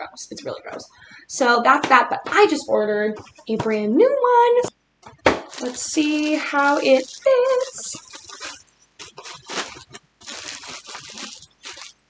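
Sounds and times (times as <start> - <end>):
packaging rustling and crinkling: 5.0 - 12.0.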